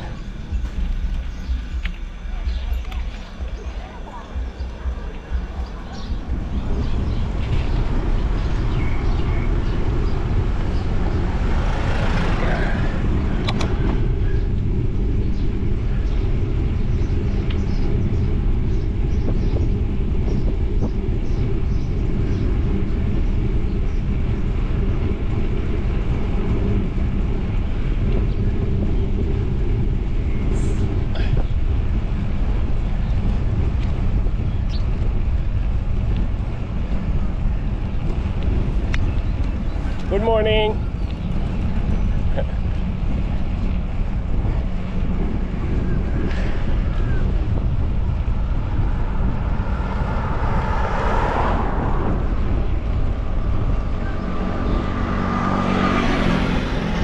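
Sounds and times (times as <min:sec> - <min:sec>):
road rumble: 0:00.0 - 0:57.0
wind buffeting microphone: 0:00.0 - 0:57.0.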